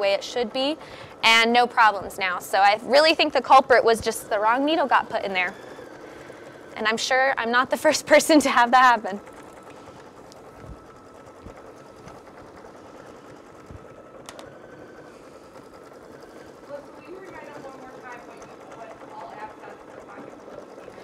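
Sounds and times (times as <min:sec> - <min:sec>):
embroidery machine stitching: 0:00.0 - 0:21.0.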